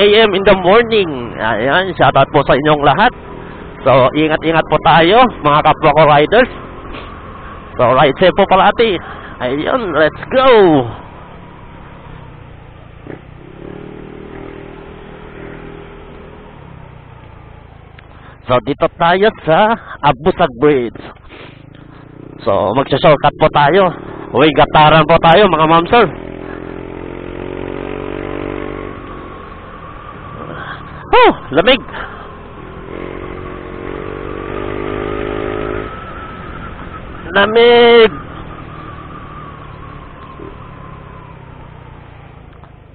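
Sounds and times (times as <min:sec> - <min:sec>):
motorcycle engine running: 0:00.0 - 0:18.5, 0:20.9 - 0:42.9
click: 0:42.5 - 0:42.8.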